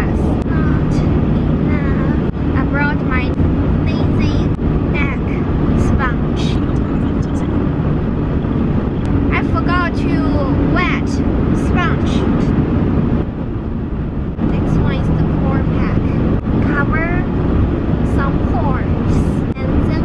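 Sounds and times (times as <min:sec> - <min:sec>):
constant hum: 0:00.0 - 0:20.0
road and engine rumble in car: 0:00.0 - 0:20.0.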